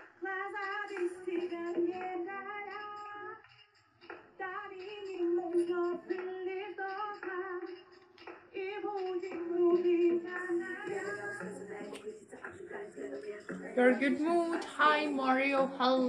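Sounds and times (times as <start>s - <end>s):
woman singing: 0.0s - 3.4s, 4.4s - 16.0s.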